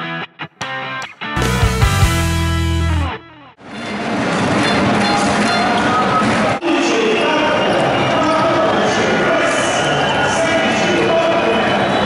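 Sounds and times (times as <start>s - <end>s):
arena music: 0.0s - 5.9s
arena crowd voices: 3.9s - 12.0s.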